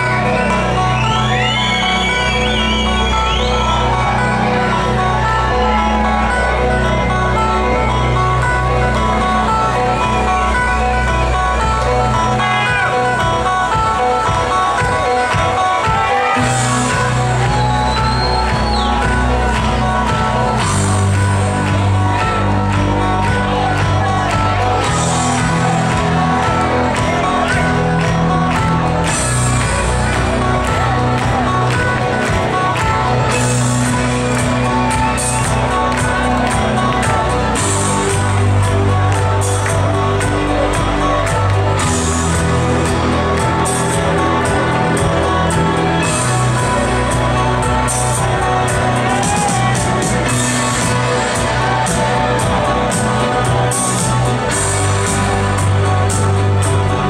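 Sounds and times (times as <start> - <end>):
crowd noise: 0.0 - 57.0
loud live band music: 0.0 - 57.0
sustained bass line: 0.0 - 57.0.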